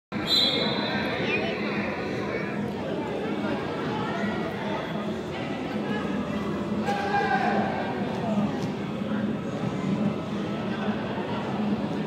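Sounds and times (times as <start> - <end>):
players' voices: 0.2 - 12.0.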